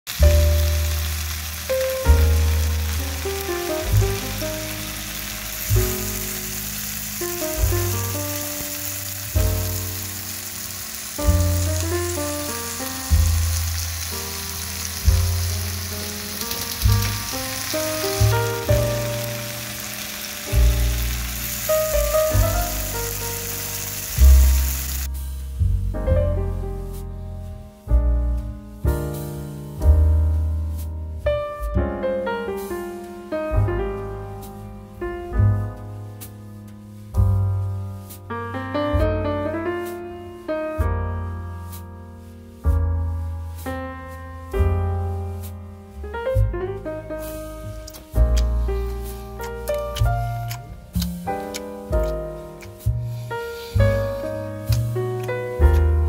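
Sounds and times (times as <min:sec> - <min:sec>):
steak sizzling in a frying pan: 0:00.1 - 0:25.2, 0:47.2 - 0:56.0
background music with bass: 0:00.1 - 0:56.0.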